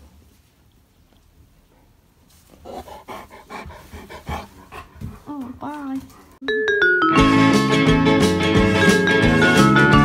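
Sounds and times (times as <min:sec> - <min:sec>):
dog panting quickly: 0:02.6 - 0:06.4.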